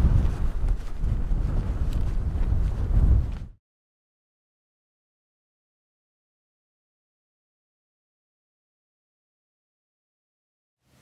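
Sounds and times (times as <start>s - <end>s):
wind buffeting the microphone: 0.0s - 3.6s.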